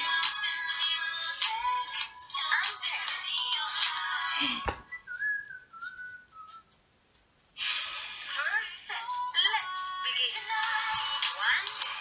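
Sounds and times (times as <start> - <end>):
background music with sliding melody: 7.6 - 12.0.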